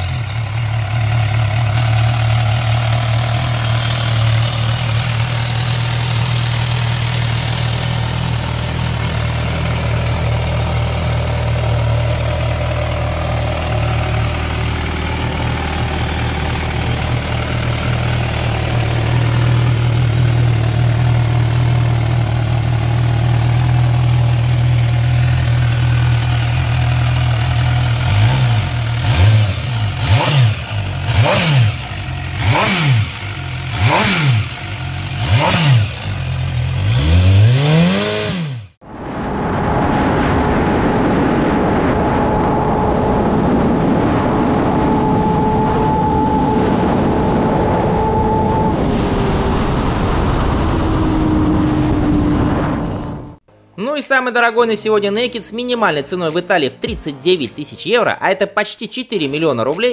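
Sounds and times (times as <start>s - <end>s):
motorcycle engine idling and revving: 0.0s - 38.8s.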